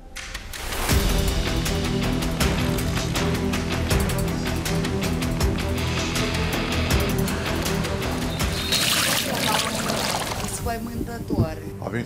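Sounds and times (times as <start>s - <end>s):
background music: 0.0s - 12.0s
floodwater swept along floor: 8.5s - 10.7s.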